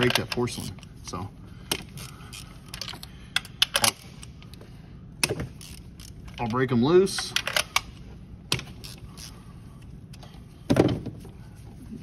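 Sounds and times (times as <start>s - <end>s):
steady low hum: 0.0s - 12.0s.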